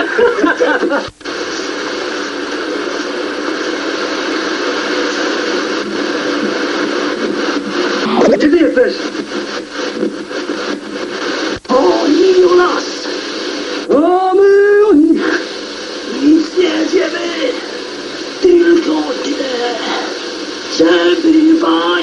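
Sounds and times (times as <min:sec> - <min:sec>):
radio static hiss: 0:00.0 - 0:22.0.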